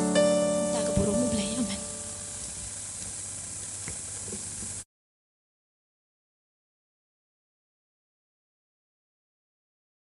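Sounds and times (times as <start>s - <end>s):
steady hiss: 0.0s - 4.9s.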